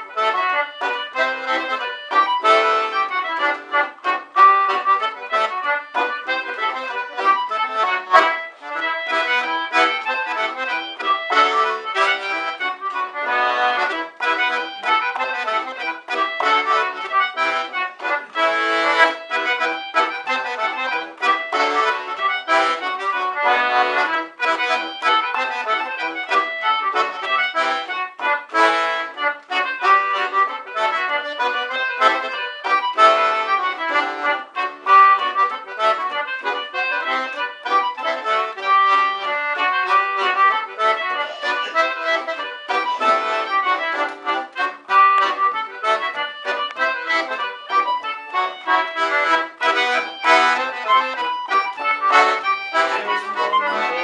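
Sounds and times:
concertinas playing folk tune: 0.0 - 54.0.

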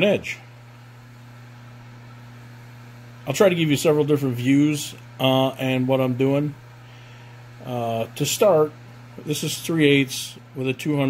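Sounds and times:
steady low electrical hum: 0.0 - 11.0.

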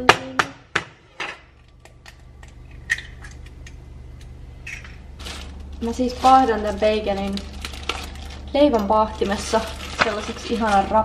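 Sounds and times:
steady low hum: 0.0 - 11.0
kitchen utensils clicking and clattering: 4.6 - 11.0.

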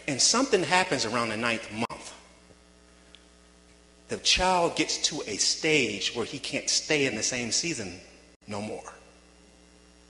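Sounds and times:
faint mains hum: 0.0 - 10.0.

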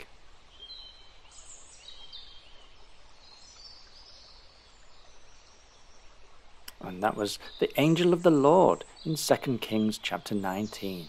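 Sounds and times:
faint bird chirps: 0.0 - 11.0
soft steady hiss: 0.0 - 11.0.

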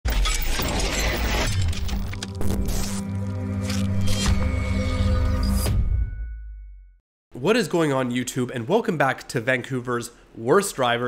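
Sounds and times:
shattering crash: 0.1 - 3.0.

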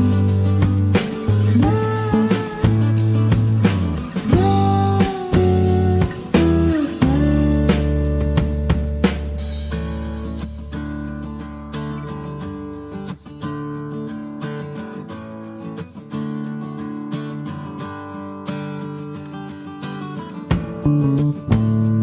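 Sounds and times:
acoustic guitar music: 0.0 - 22.0.

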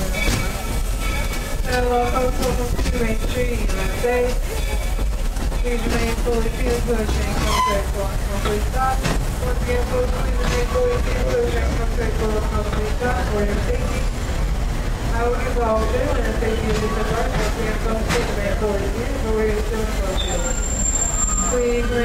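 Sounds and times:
passengers chattering: 0.0 - 22.0
train car rumbling: 0.0 - 22.0.

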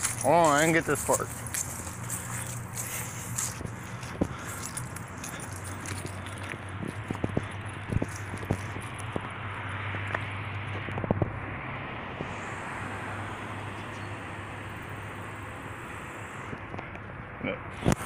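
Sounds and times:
footsteps: 0.0 - 10.9
low engine hum: 0.0 - 18.0
passing vehicle noise: 0.0 - 18.0.

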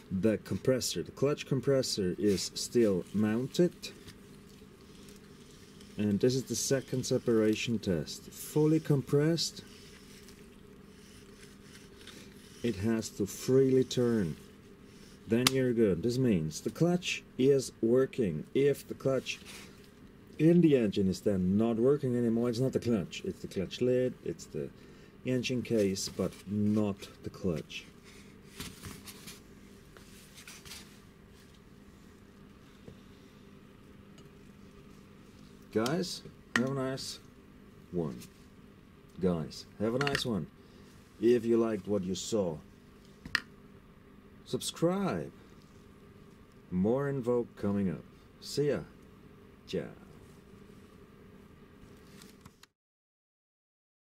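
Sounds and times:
steady low hum: 0.0 - 52.7.

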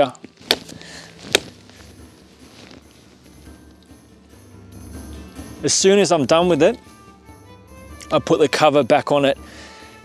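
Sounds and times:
faint background music: 0.0 - 10.0
hatchet chopping wood: 0.4 - 0.7.

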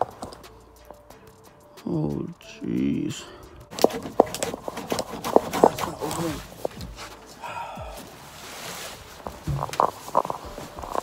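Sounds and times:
knocking handling noises: 3.7 - 8.2, 9.1 - 11.0
footsteps: 3.7 - 11.0.

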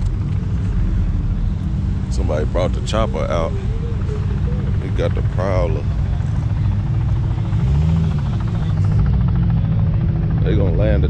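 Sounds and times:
helicopter engine drone: 0.0 - 11.0
helicopter rotor chop: 0.0 - 11.0.

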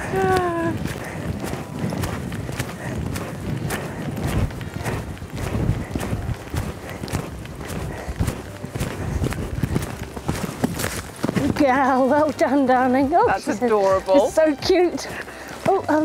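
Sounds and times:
hooves cantering on sand: 0.0 - 16.0.

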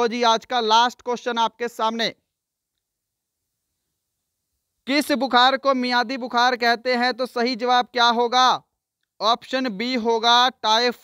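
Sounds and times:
man speaking: 0.0 - 2.3, 4.8 - 11.0.

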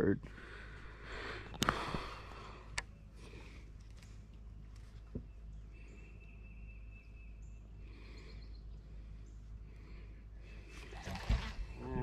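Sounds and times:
boat engine rumble: 0.0 - 12.0.

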